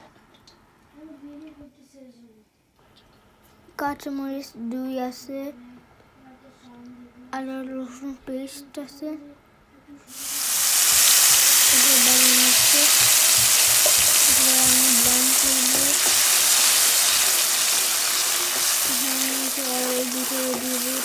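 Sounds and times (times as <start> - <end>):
paste sizzling in hot oil: 10.1 - 21.0
spatula stirring in pan: 10.2 - 21.0.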